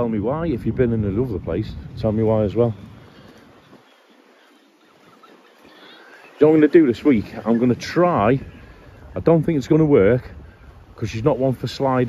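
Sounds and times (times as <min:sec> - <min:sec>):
seafront ambience hiss: 0:00.0 - 0:12.0.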